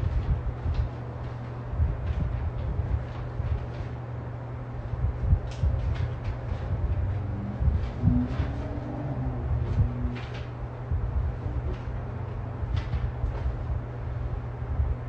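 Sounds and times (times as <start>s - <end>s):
steady low room hum: 0.0s - 15.0s
low bumps: 5.0s - 13.8s.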